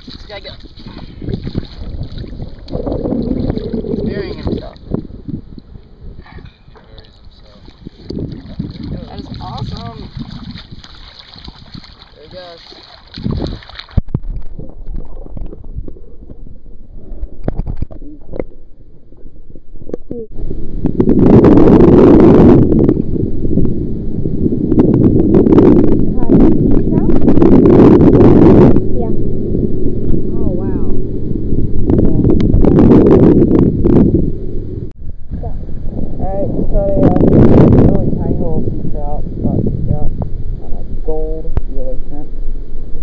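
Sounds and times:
muffled underwater rumble: 0:00.0 - 0:12.3, 0:12.9 - 0:43.0
wind buffeting microphone: 0:00.0 - 0:43.0
camera splashing into water: 0:07.7 - 0:15.9.

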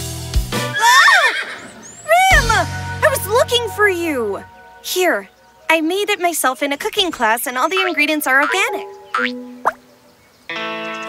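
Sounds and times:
background music: 0:00.0 - 0:11.0
cartoon unicorn whinnying: 0:00.8 - 0:02.6.

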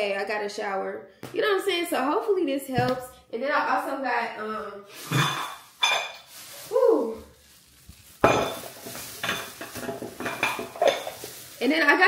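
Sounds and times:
plastic bag rustling: 0:04.9 - 0:12.0.

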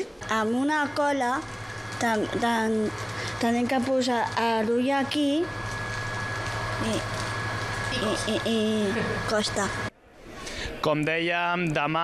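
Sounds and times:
thin high whine: 0:00.0 - 0:09.9
low machine hum: 0:00.0 - 0:11.0.

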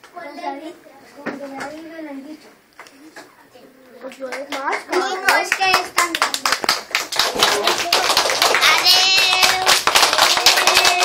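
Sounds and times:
hands clapping: 0:04.1 - 0:11.0.

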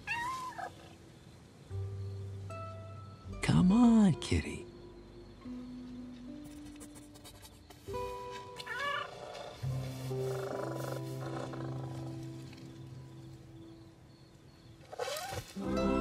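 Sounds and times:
soft orchestral score: 0:15.6 - 0:16.0.

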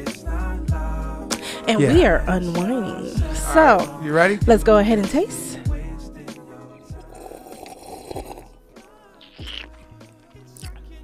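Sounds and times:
faint background music: 0:00.0 - 0:11.0
slurping from a glass: 0:07.0 - 0:08.6, 0:09.2 - 0:10.8.

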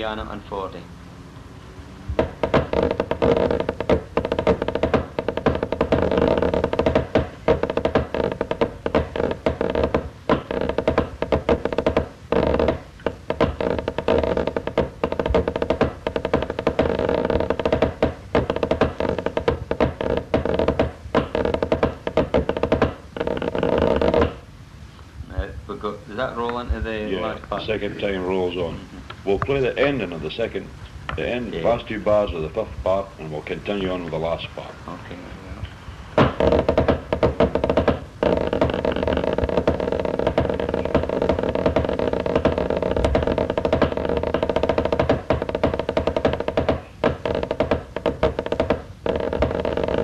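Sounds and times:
drumsticks on practice pad: 0:02.1 - 0:24.4.

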